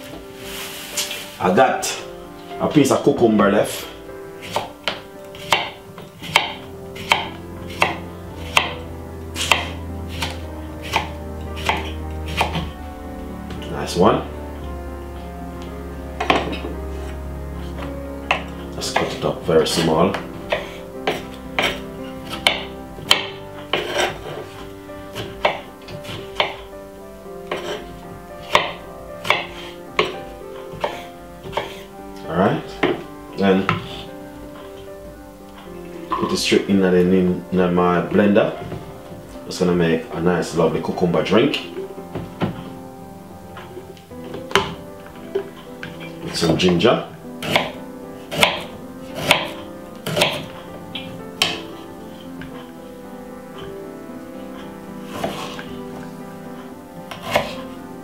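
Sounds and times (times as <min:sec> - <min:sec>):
background music: 0:00.0 - 0:58.0
knife chopping on wooden board: 0:04.4 - 0:08.8, 0:09.4 - 0:12.8, 0:16.2 - 0:16.8, 0:19.8 - 0:26.6, 0:27.5 - 0:27.8, 0:28.4 - 0:31.8, 0:47.4 - 0:50.6, 0:51.4 - 0:51.8, 0:55.1 - 0:55.6, 0:57.1 - 0:57.6.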